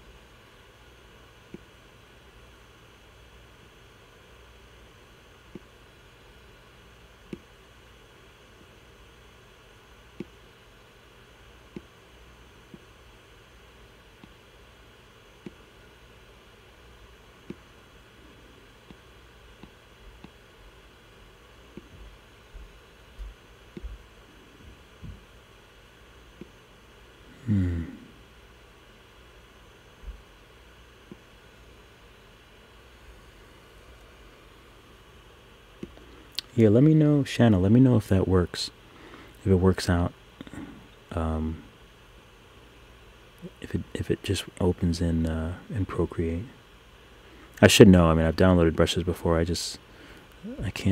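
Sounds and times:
computer fan hiss: 0.0s - 50.9s.

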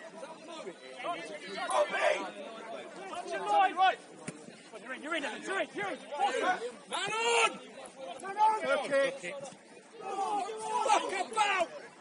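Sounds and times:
footballers shouting calls: 0.0s - 12.0s.

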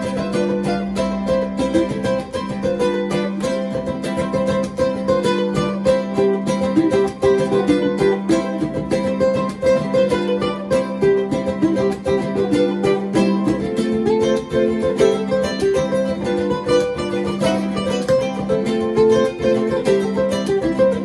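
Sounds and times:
ukuleles strumming chords: 0.0s - 21.0s.

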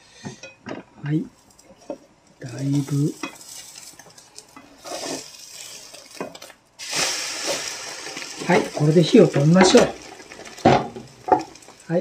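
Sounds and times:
omelette sizzling in a frying pan: 1.4s - 12.0s
spatula scraping a pan: 2.8s - 11.8s.

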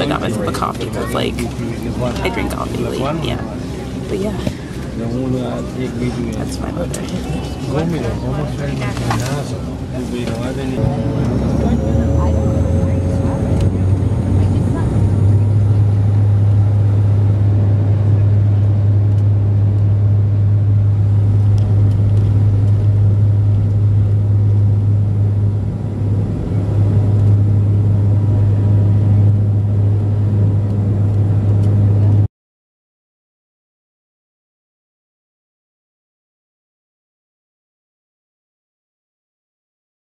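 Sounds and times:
propeller drone: 0.0s - 32.3s.

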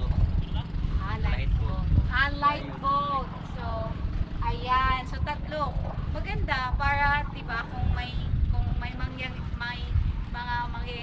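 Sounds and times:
men talking: 0.0s - 0.9s.

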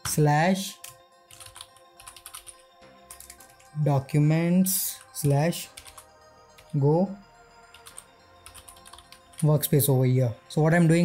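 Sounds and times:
faint background music: 0.0s - 11.0s
keyboard typing: 0.8s - 3.8s, 4.8s - 6.8s, 7.7s - 9.7s.

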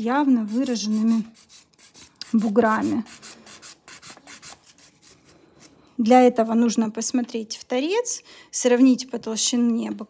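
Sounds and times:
nail file rasping on a nail: 0.4s - 4.8s.

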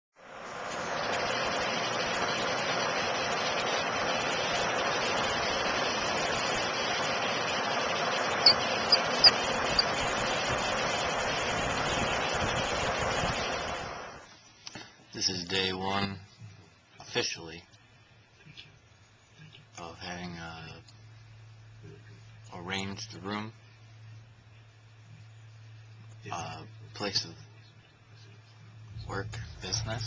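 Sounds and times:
rushing hiss: 0.2s - 14.3s.

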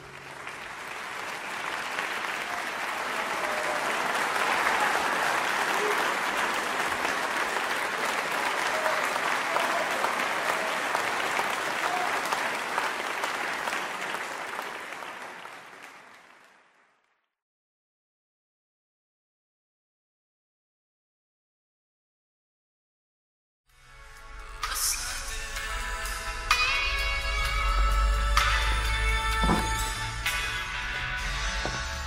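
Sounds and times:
audience applauding: 0.0s - 17.1s, 29.3s - 30.5s.

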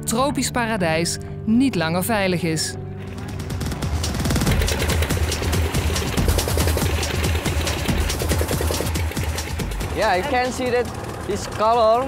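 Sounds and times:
engine knocking over low drone: 3.0s - 12.0s.

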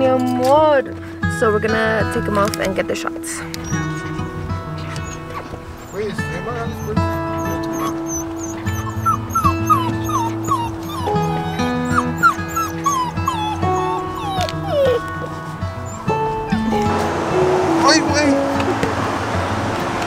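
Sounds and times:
background music with held notes: 0.0s - 20.0s
puppies whimpering and yipping: 2.6s - 19.2s.

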